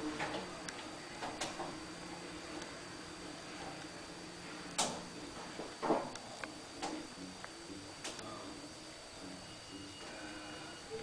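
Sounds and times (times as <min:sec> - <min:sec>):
faint background hum: 0:00.0 - 0:11.0
thin high whine: 0:00.0 - 0:11.0.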